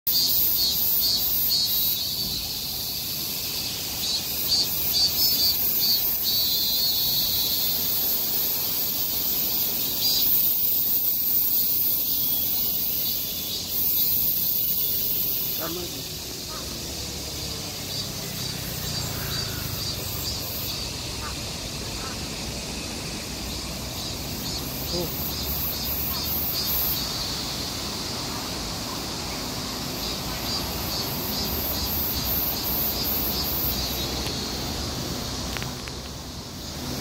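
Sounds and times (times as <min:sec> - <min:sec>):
high-pitched insects shrilling: 0:00.1 - 0:37.0.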